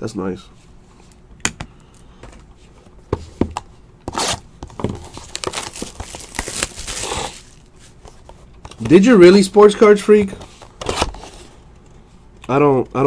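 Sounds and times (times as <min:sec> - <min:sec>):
plastic wrapping tearing and crinkling: 0:04.1 - 0:07.8.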